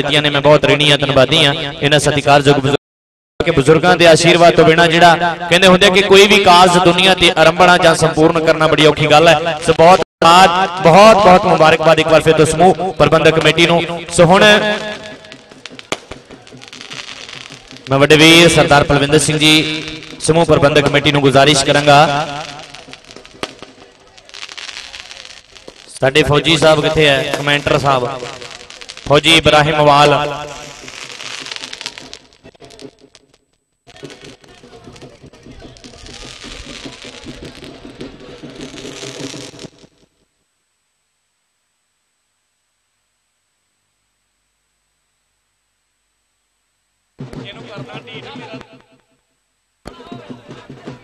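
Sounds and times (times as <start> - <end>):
firecrackers popping: 3.5 - 40.8, 47.1 - 51.0.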